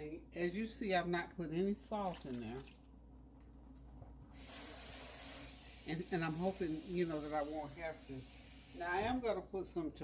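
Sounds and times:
running water hiss: 4.3 - 9.1.

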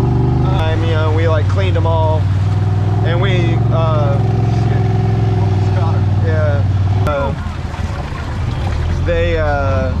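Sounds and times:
engine droning steadily: 0.0 - 10.0.

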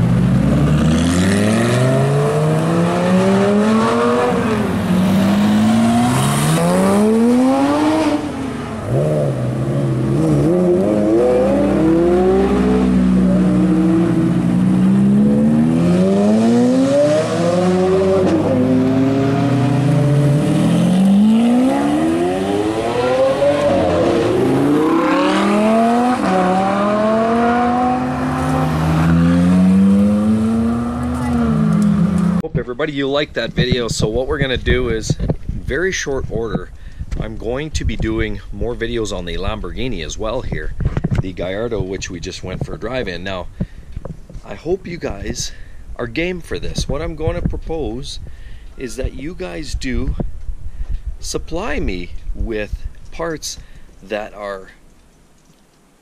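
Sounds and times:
sports car engines revving: 0.0 - 32.5.

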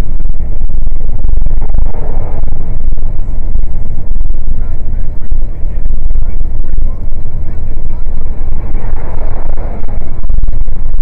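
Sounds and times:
truck engine rumble: 0.0 - 11.0.

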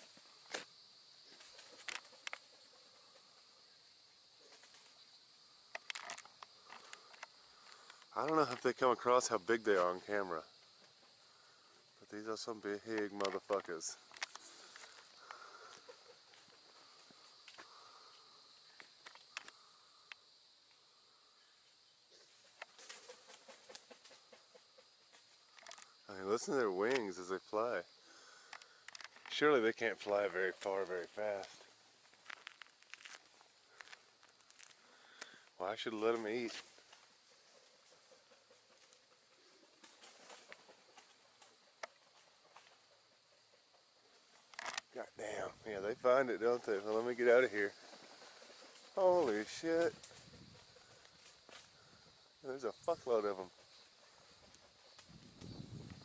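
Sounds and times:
faint insect buzz: 0.0 - 56.0
soft irregular ticks: 5.7 - 8.8, 12.6 - 20.8, 22.6 - 27.4, 28.1 - 45.0, 53.2 - 56.0
leaves rustling: 5.8 - 19.8, 22.2 - 24.2, 25.1 - 37.9, 44.2 - 56.0
wingbeats of birds: 22.3 - 25.4, 37.6 - 41.6, 47.0 - 51.7.

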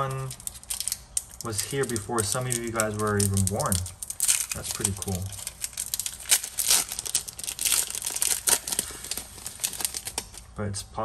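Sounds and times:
foil wrapper tearing and crinkling: 0.0 - 10.5.

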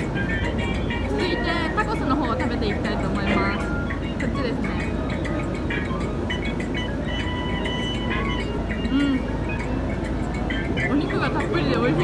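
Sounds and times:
indistinct chatter of diners: 0.0 - 12.0.

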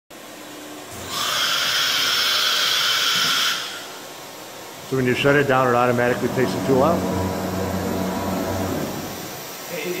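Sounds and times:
cnc router high-pitched whine: 0.2 - 9.7.

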